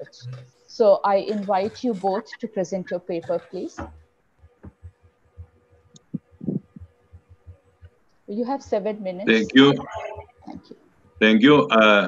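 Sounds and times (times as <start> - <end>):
faint low thumps: 2.8 - 7.8
faint steady hum: 8.3 - 12.0.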